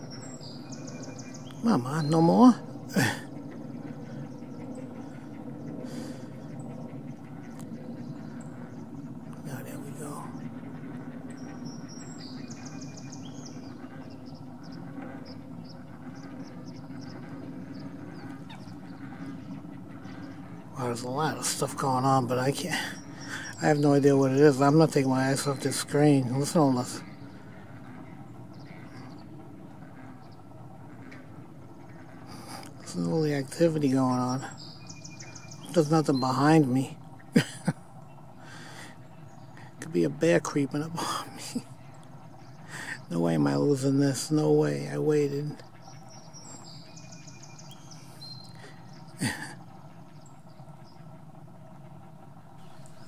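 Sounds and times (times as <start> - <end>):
faint outdoor background: 0.0 - 53.0
pond background sounds: 0.0 - 53.0.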